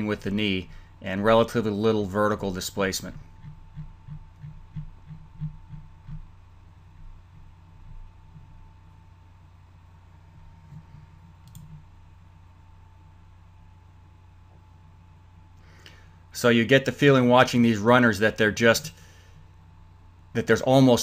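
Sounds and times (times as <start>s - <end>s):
low steady hum: 0.0s - 21.0s
faint irregular clicks: 10.6s - 11.9s.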